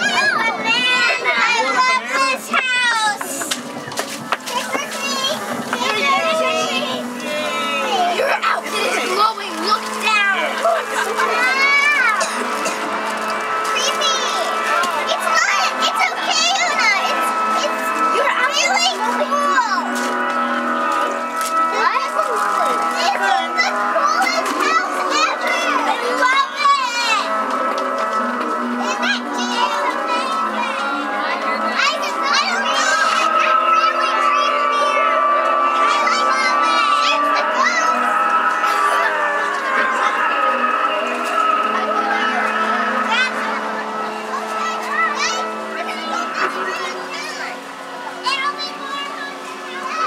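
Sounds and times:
background music: 0.0 - 50.0
children chattering and exclaiming: 0.0 - 50.0.

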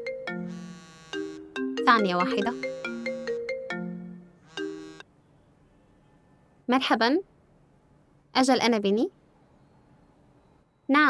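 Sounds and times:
mobile phone ringtone: 0.0 - 5.0.

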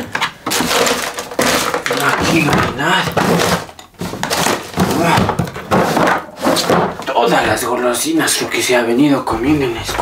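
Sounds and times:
rummaging in plastic drawer: 0.0 - 8.4.

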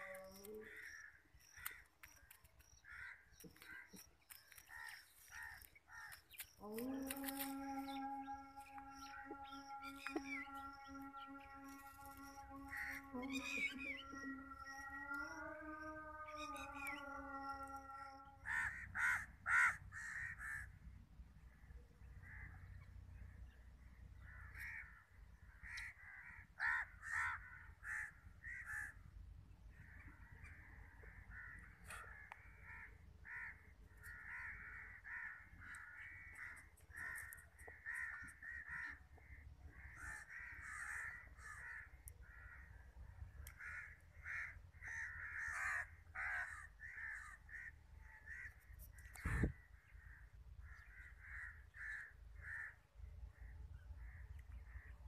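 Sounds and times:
bird giving harsh calls: 7.5 - 20.7.

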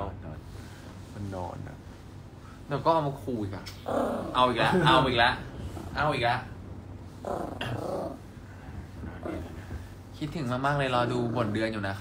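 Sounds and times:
small dog growling: 3.7 - 4.9, 7.2 - 8.4, 9.0 - 9.8, 10.5 - 11.8.

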